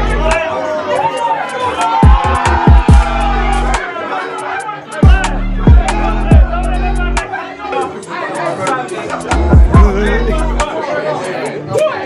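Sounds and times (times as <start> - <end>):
men talking and calling out: 0.0 - 12.0
party music: 0.0 - 12.0.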